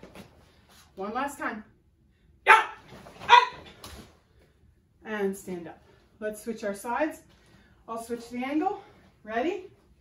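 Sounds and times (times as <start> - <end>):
woman barking a shout: 2.5 - 3.7.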